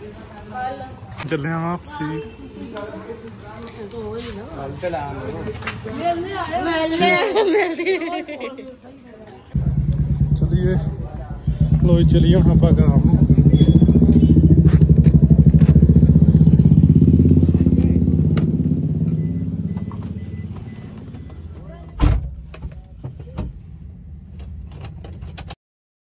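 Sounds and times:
vehicle engine running: 9.6 - 21.8.

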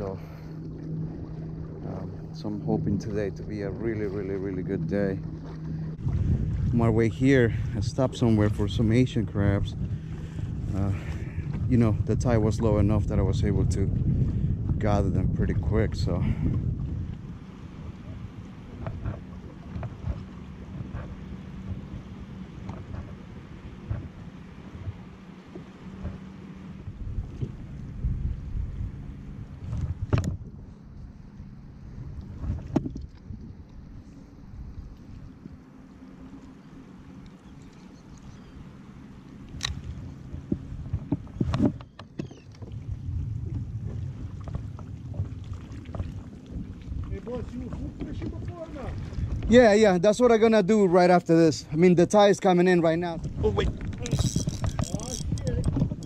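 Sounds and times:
wind on microphone: 0.0 - 35.6, 39.4 - 50.4, 52.9 - 56.0
water against hull: 0.0 - 56.0.

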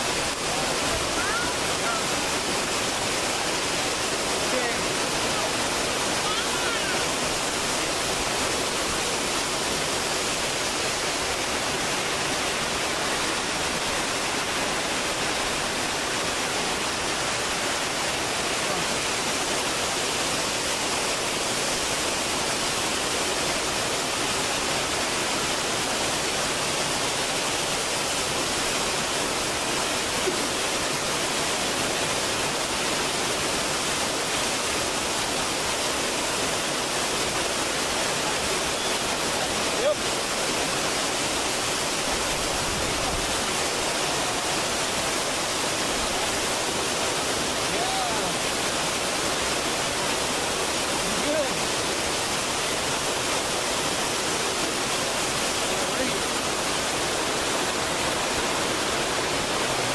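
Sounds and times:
rushing water roar: 0.0 - 59.9.

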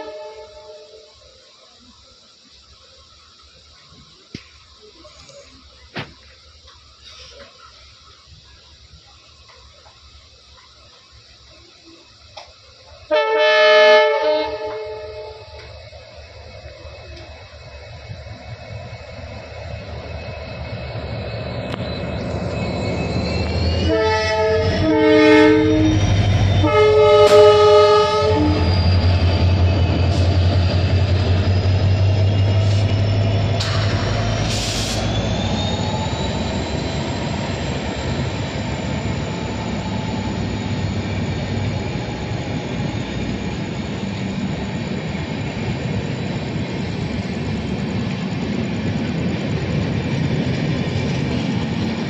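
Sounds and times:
train horn blasts: 0.0 - 1.2, 13.1 - 15.7, 23.8 - 29.0
train running on rails: 0.0 - 52.0.

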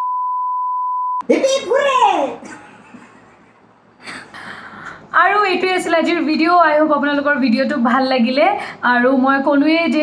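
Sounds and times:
test tone beep: 0.0 - 1.2
woman speaking: 1.2 - 2.6, 5.1 - 10.0.

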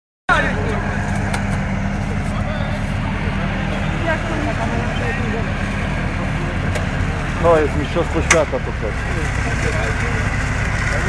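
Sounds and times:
tracked vehicle engine droning: 0.3 - 11.0.

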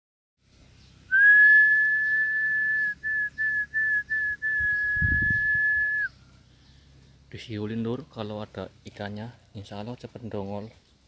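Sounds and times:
person whistling high notes: 1.1 - 6.1.

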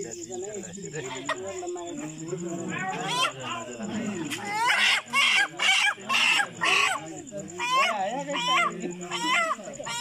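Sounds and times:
chicken squawking loudly: 4.4 - 7.0.

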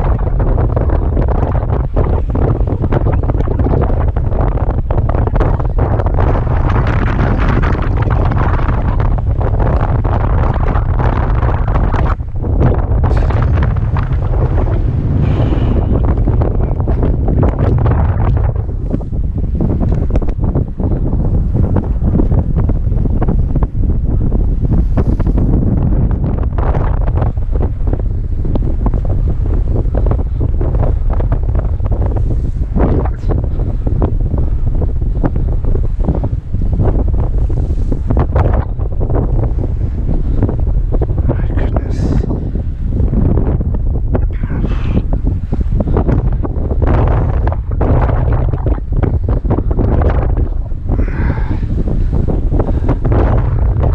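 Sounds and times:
waves washing against rocks: 0.0 - 20.6
wind buffeting microphone: 0.0 - 53.9.

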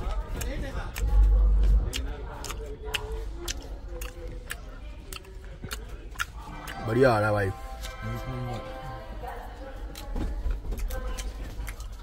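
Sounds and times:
steady low hum: 0.0 - 6.6
faint voices: 0.0 - 12.0.

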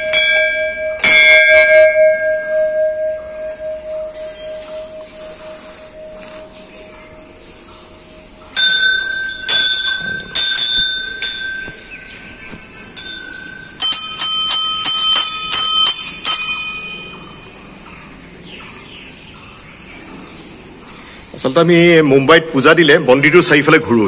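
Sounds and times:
metal bells ringing: 0.0 - 18.2.

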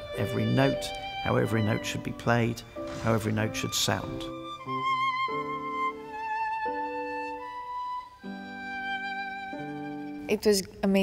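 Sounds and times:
solo violin melody: 0.0 - 10.4.

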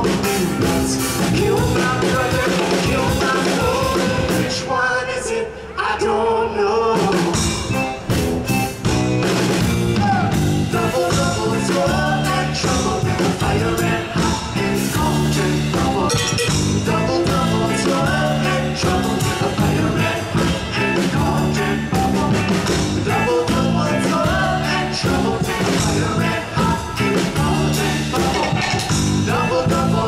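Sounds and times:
drum kit: 0.0 - 4.7, 7.0 - 30.0
guitars: 0.0 - 5.6, 6.9 - 30.0.

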